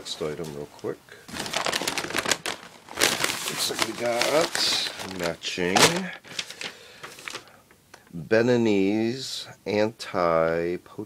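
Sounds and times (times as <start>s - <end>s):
fabric rustling on packing paper: 1.3s - 7.5s.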